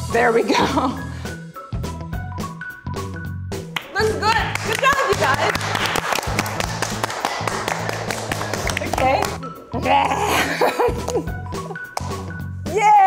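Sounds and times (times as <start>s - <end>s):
music with bass line: 0.0s - 12.8s
hand clapping: 3.7s - 9.4s, 10.9s - 12.3s.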